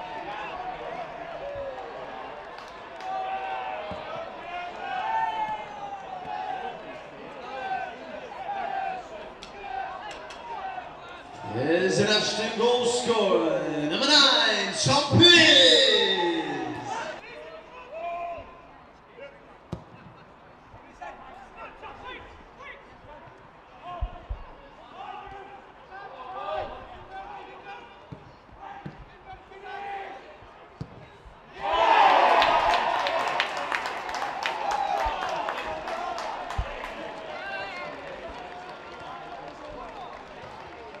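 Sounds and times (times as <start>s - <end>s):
crowd cheering and clapping: 0.0s - 6.7s, 11.4s - 17.2s, 31.5s - 41.0s
players and spectators shouting: 0.0s - 18.4s, 31.4s - 39.3s.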